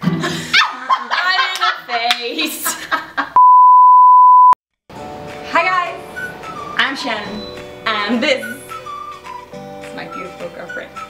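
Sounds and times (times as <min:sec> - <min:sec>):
laughter: 0:00.0 - 0:03.4
censor bleep: 0:03.4 - 0:04.6
music: 0:04.9 - 0:11.0
people talking: 0:06.8 - 0:08.6, 0:10.0 - 0:10.9.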